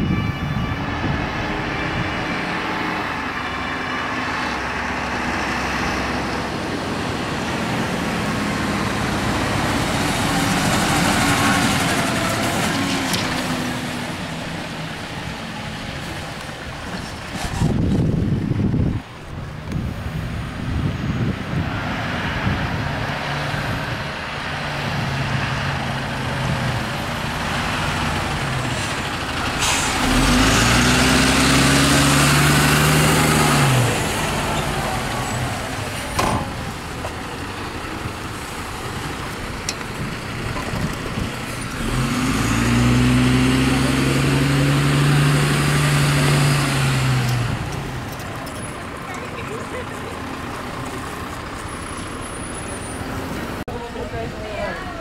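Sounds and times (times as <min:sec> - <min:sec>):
diesel truck engine running: 0:00.9 - 0:55.0.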